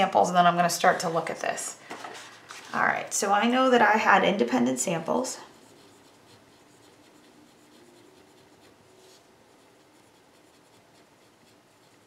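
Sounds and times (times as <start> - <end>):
pen scratching on paper: 5.5 - 12.0.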